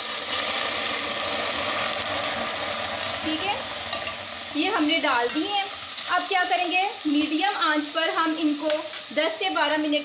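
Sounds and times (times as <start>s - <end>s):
tomatoes sizzling in a saucepan: 0.0s - 10.0s.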